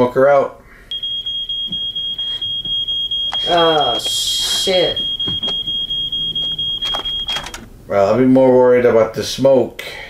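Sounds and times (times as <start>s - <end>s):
smoke detector alarm tone: 0.9s - 7.7s.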